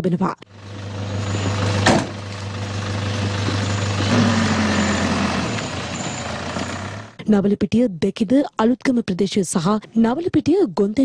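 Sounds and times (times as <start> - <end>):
van engine running: 0.5 - 7.2
door slamming shut: 1.5 - 2.3.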